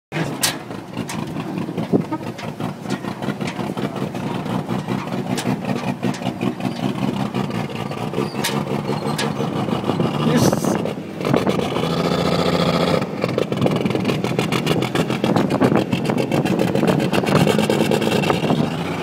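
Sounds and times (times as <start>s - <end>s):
truck engine running unevenly: 0.1s - 19.0s.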